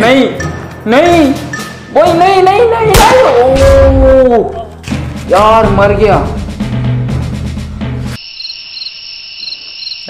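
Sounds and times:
crickets chirping: 0:08.2 - 0:10.0.

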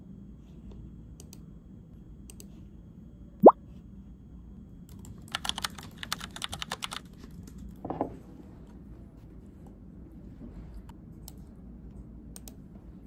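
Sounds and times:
typing on laptop keyboard: 0:04.9 - 0:07.7.

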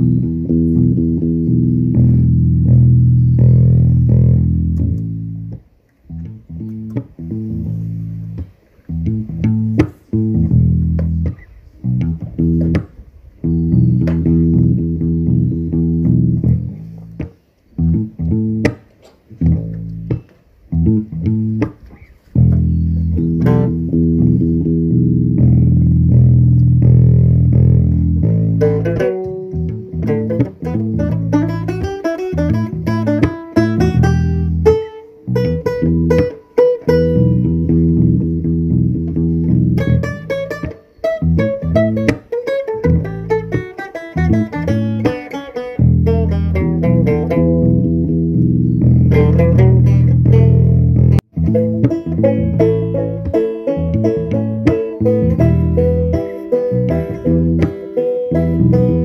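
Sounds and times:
repeating low bass line: 0:00.0 - 0:18.7, 0:19.4 - 0:42.2, 0:42.8 - 0:59.0
banjo picking: 0:00.0 - 0:59.0.

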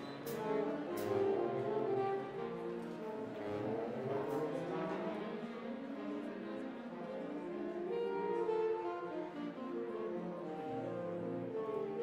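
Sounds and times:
big band playing: 0:00.0 - 0:05.3.

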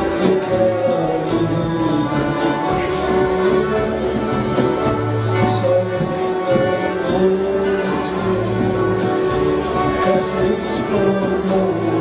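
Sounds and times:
accordions holding chords: 0:00.0 - 0:12.0
bass guitar: 0:00.0 - 0:12.0
drums: 0:00.0 - 0:12.0
guitar: 0:00.0 - 0:12.0.

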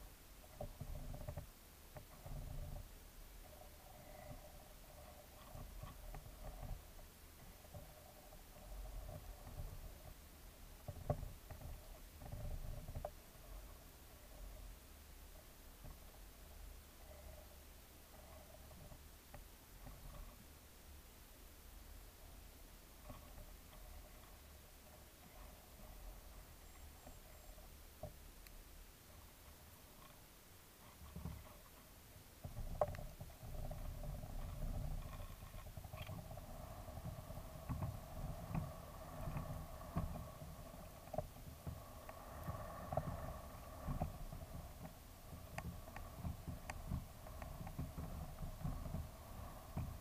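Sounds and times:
camera motor rumble and hum: 0:00.0 - 0:50.0
low underwater rumble: 0:32.4 - 0:50.0.

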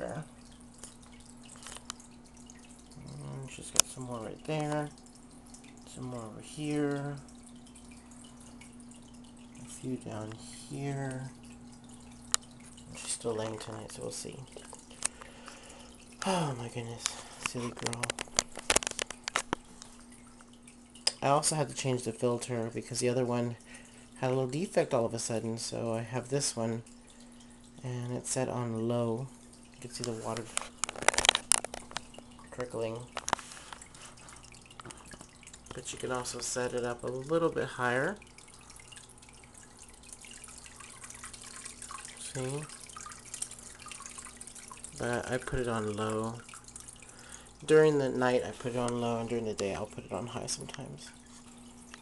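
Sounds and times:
filter water splashing trickle: 0:00.0 - 0:52.0
low steady hum: 0:00.0 - 0:52.0.

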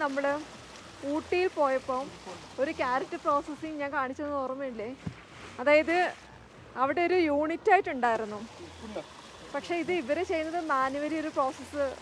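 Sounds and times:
running water of stream and waterfall: 0:00.0 - 0:12.0
woman speaking: 0:01.0 - 0:05.0, 0:05.6 - 0:06.2, 0:06.8 - 0:08.5, 0:09.6 - 0:12.0.

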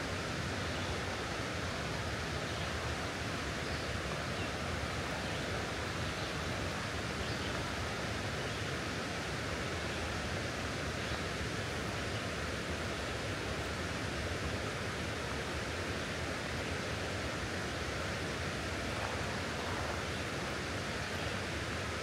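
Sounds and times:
river water rushing: 0:00.0 - 0:22.0.

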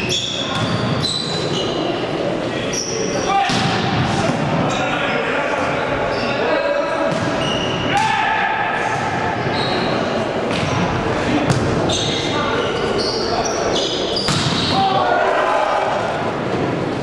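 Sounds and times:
shoes squeaking on court floor: 0:00.0 - 0:02.0, 0:05.8 - 0:07.9, 0:09.4 - 0:10.9, 0:11.5 - 0:14.7
volleyball hits: 0:07.1 - 0:08.2, 0:11.5 - 0:11.9, 0:14.2 - 0:14.8
players shouting: 0:07.8 - 0:09.5, 0:14.4 - 0:16.4.

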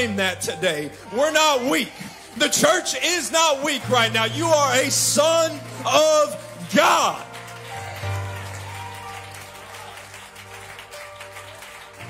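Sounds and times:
worship band playing chords: 0:00.0 - 0:12.0.

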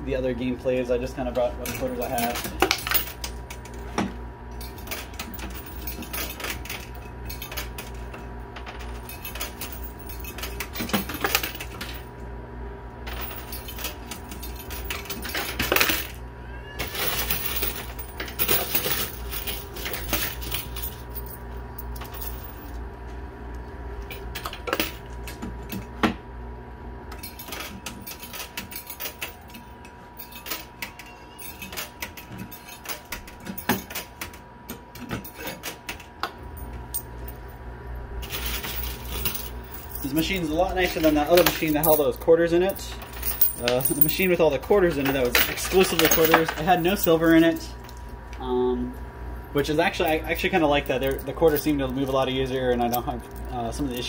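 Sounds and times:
machine electrical hum: 0:00.0 - 0:54.0
coins clinking on metal: 0:01.6 - 0:03.8, 0:04.6 - 0:12.0, 0:13.1 - 0:16.2, 0:16.8 - 0:22.8, 0:27.2 - 0:34.3, 0:38.2 - 0:48.0, 0:49.8 - 0:54.0.

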